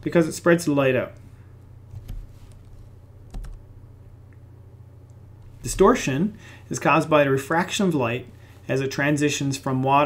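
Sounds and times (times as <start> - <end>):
low steady hum: 0.0 - 10.0
keyboard keystroke clicks: 3.3 - 3.6.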